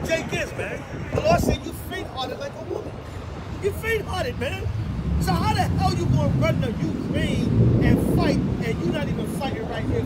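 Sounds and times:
man talking: 0.0 - 10.0
passing vehicle rumble: 0.0 - 10.0
street traffic: 0.0 - 10.0.

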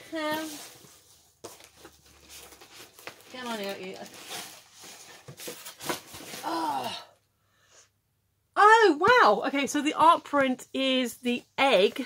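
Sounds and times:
packaging rustling and crinkling: 0.1 - 6.7.

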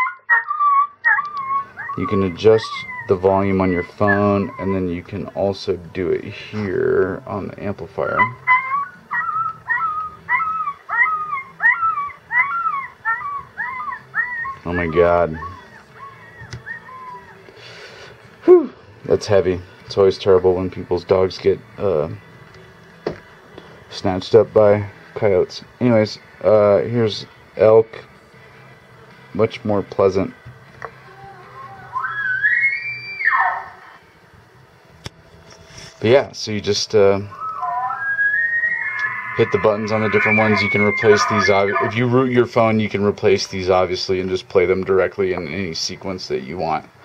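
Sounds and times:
puppy yelping whimpers over loudspeaker: 0.0 - 5.0, 8.2 - 17.4, 31.1 - 33.9, 37.3 - 42.2
elk bugle through loudspeaker: 31.5 - 33.9, 37.3 - 42.3.

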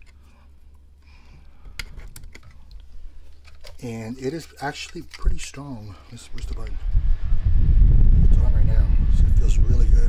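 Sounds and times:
handling rustle: 0.0 - 6.8
steady low hum: 0.0 - 10.0.

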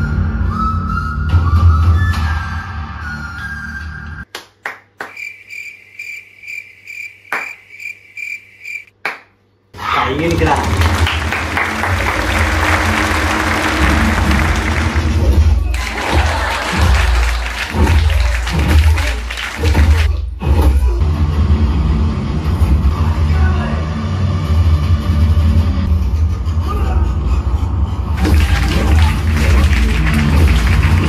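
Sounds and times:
cheering or applause: 9.8 - 20.1, 28.2 - 31.0
action film music with heavy bass: 12.4 - 31.0.

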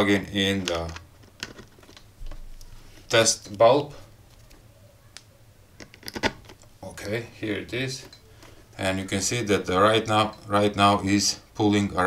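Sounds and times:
plugs clicking against plastic box: 5.2 - 6.7.

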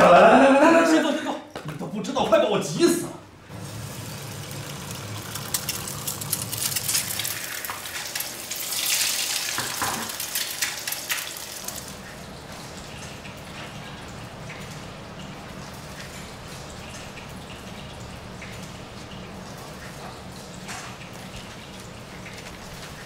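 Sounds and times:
food sizzling in a pan: 3.5 - 12.0
spitting oil crackles: 3.5 - 12.1.

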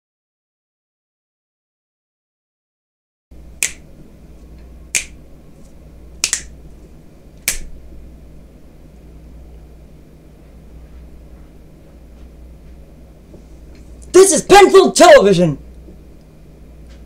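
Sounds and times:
low steady hum: 3.3 - 17.0
sharp clicks: 3.6 - 3.8, 4.9 - 5.2, 6.2 - 6.5, 7.4 - 7.7.

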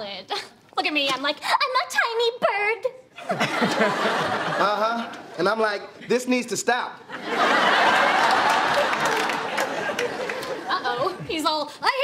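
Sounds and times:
audience laughter: 3.2 - 5.2, 7.1 - 11.3.

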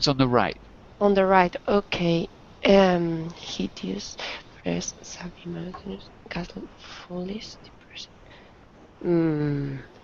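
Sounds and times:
murmured syllable: 0.0 - 8.1
whispered hisses: 3.3 - 5.8, 6.4 - 8.1.

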